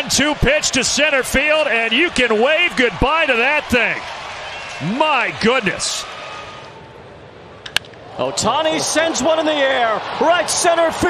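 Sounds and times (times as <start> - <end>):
ballpark crowd noise: 0.0 - 11.0
baseball bat crack: 7.6 - 8.0.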